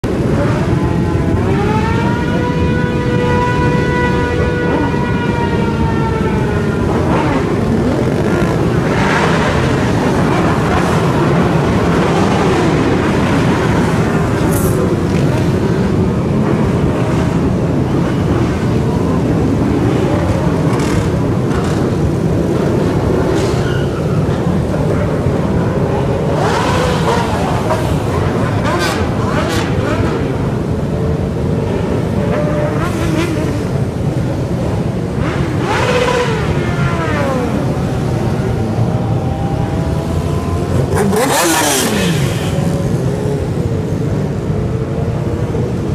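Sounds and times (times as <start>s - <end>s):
motorcycle engines revving: 0.0s - 45.9s
motorcycles riding past: 0.1s - 45.9s.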